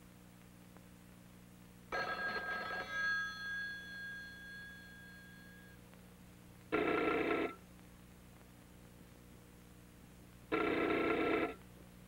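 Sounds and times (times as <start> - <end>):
telephone bell ringing: 1.9 - 5.8, 6.7 - 7.6, 10.5 - 11.6.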